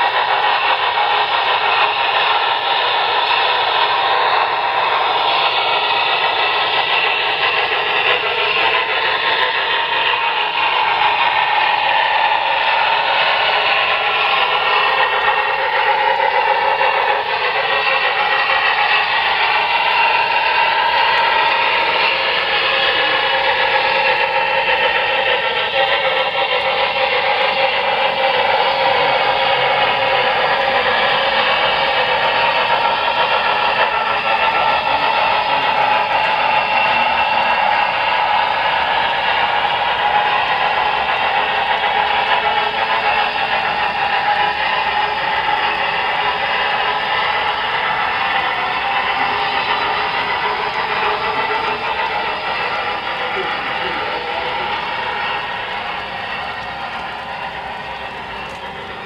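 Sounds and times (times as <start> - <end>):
model train wheels on rails: 0.0 - 59.0.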